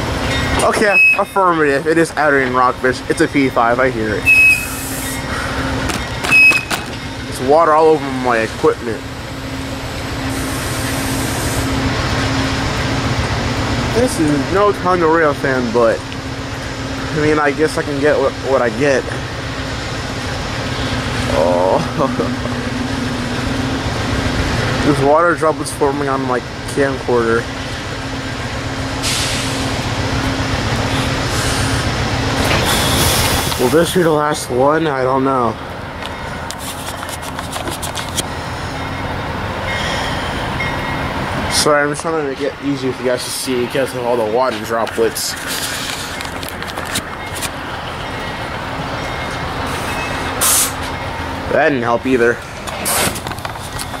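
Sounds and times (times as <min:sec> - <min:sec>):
train wheels rushing on rail: 0:00.0 - 0:54.0
low steady hum: 0:18.5 - 0:26.4.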